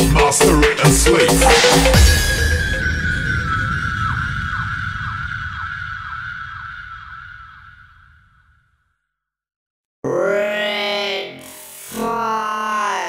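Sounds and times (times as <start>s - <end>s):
electronic dance music: 0.0s - 3.0s
high synth tone with swoops: 1.1s - 8.0s
low rumble: 1.4s - 8.0s.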